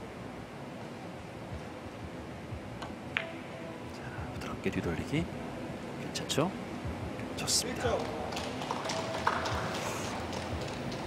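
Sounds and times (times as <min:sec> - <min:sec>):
billiard balls clicking: 0:07.9 - 0:11.0.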